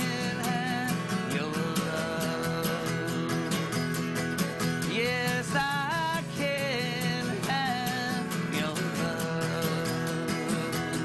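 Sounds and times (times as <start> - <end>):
man singing country song: 0.0 - 11.0
strummed guitar: 0.0 - 11.0.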